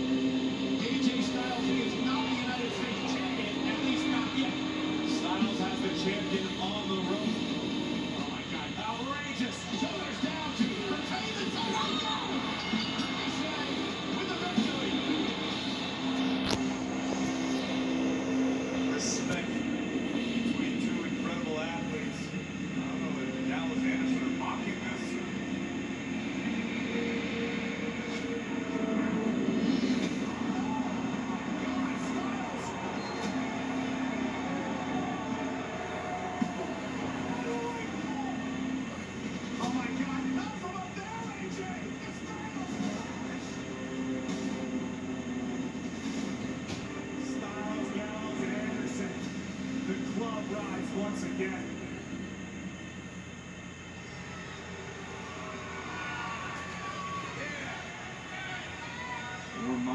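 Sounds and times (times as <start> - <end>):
arena crowd noise: 0.0 - 45.9, 54.1 - 59.9.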